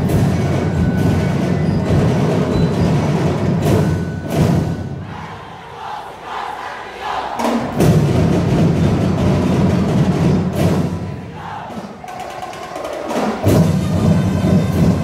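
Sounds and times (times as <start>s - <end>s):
drum ensemble: 0.0s - 15.0s
group shouting a chant: 4.8s - 7.9s, 10.8s - 13.4s.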